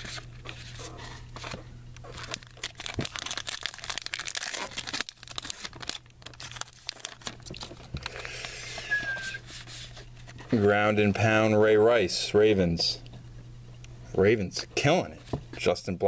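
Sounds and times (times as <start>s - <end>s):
plastic wrapper tearing and crinkling: 2.0s - 8.2s.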